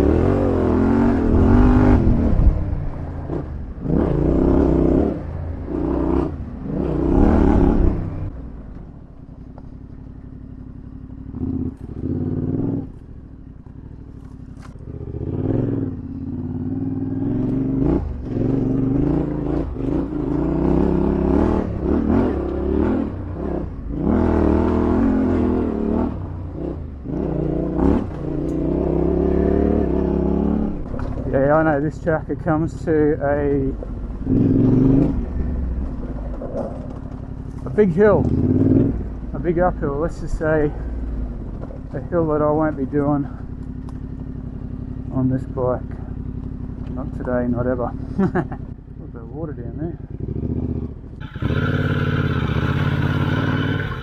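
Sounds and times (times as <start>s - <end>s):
motorcycle engine surging: 0.0s - 8.4s, 9.4s - 54.0s.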